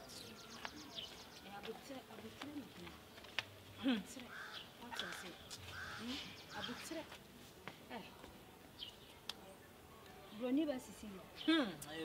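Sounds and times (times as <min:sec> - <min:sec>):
bird calling: 0:04.3 - 0:07.0.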